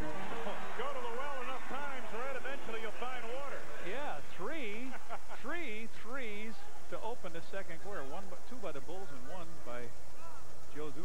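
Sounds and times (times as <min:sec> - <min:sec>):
man commentating: 0:00.0 - 0:10.0.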